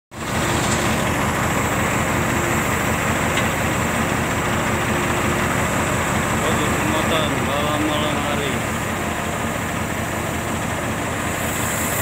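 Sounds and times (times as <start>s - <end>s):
diesel machinery engine drone: 0.1s - 12.0s.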